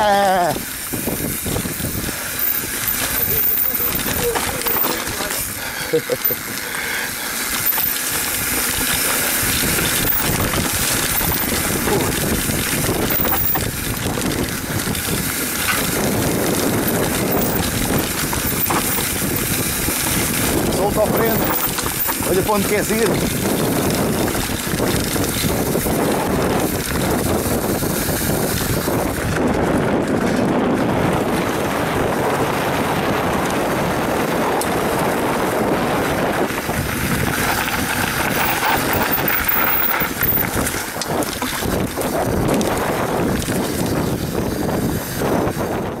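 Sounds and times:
mountain bike tyre and chain rattle: 0:00.0 - 0:46.0
wind buffeting microphone: 0:00.0 - 0:46.0.

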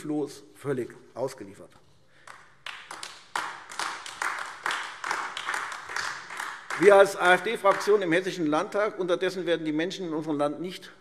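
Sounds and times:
scattered applause: 0:02.2 - 0:08.1.

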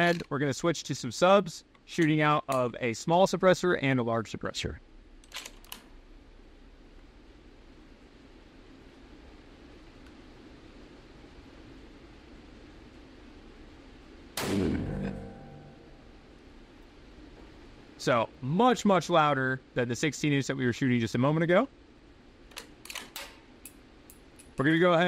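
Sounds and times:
rifle shot ringing indoors: 0:14.4 - 0:16.4.

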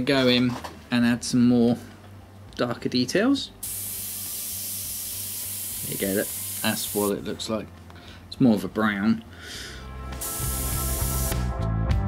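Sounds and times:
airbrush spraying hiss: 0:03.6 - 0:07.1, 0:10.2 - 0:11.5
background music: 0:09.3 - 0:12.0.

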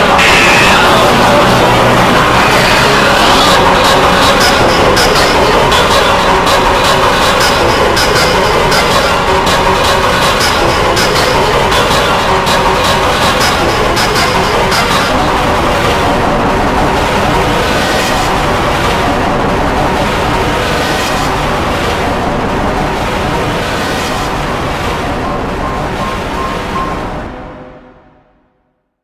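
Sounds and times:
loud distorted noise: 0:00.0 - 0:28.6.

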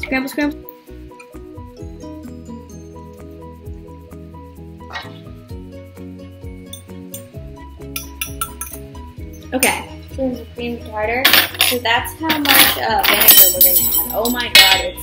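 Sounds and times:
background music with bass: 0:00.0 - 0:15.0
metal spoon clinking glass jug: 0:06.7 - 0:08.8, 0:11.3 - 0:15.0.

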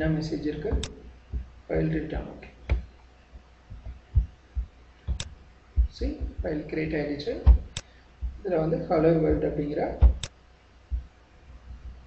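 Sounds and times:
dull thumps on keyboard: 0:00.7 - 0:01.9, 0:02.7 - 0:02.9, 0:03.7 - 0:06.6, 0:07.4 - 0:08.4, 0:09.3 - 0:10.3.

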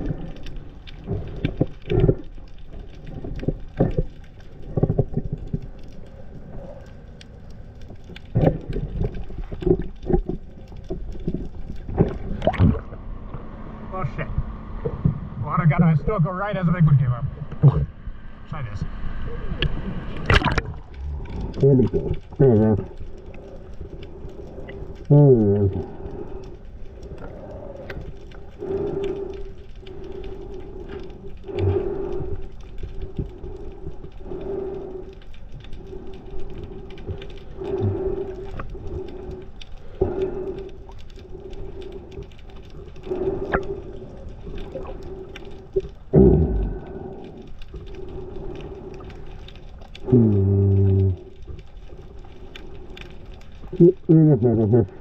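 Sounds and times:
underwater hum: 0:00.0 - 0:55.0.

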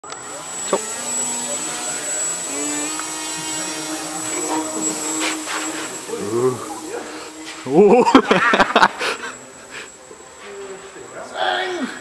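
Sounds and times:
high whine: 0:00.0 - 0:11.4
electric motor and propeller humming: 0:00.0 - 0:12.0.

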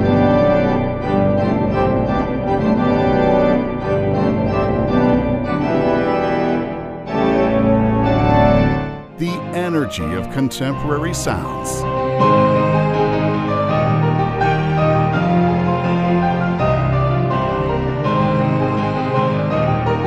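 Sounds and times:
organ playing sustained chords: 0:00.0 - 0:20.0.

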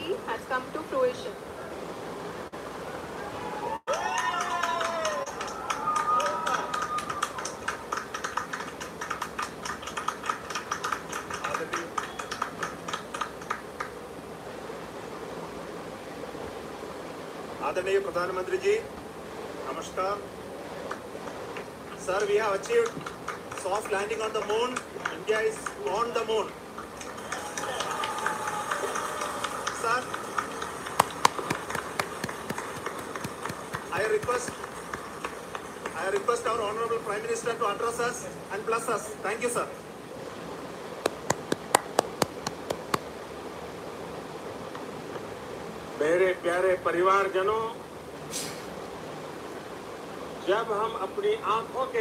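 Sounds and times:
crowd applauding: 0:03.9 - 0:14.0, 0:21.6 - 0:37.0, 0:41.0 - 0:43.0
sharp hand claps: 0:04.0 - 0:14.0, 0:21.6 - 0:26.1, 0:26.8 - 0:36.5, 0:41.0 - 0:43.1.

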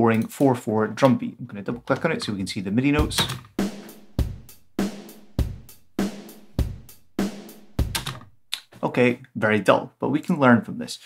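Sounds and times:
person speaking: 0:00.0 - 0:03.4, 0:07.9 - 0:09.7
drum machine beat: 0:02.1 - 0:08.7.

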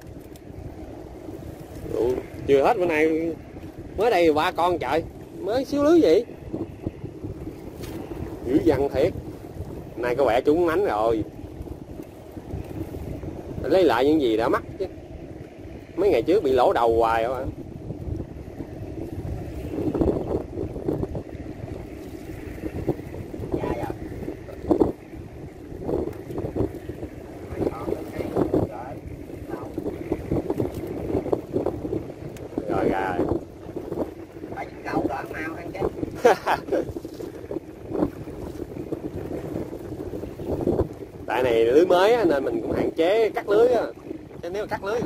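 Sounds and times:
wind blowing on microphone: 0:00.0 - 0:45.0.

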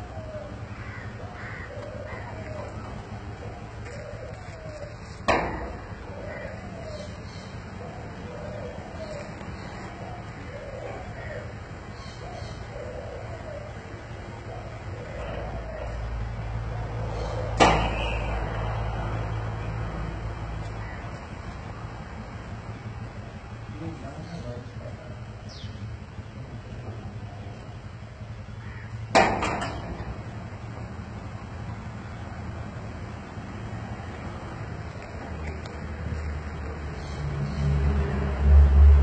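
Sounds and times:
metal gate rumbling: 0:28.9 - 0:31.2.

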